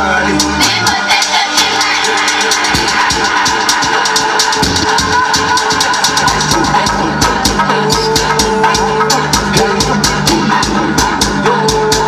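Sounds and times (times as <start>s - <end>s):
loud dance music: 0.0s - 12.0s.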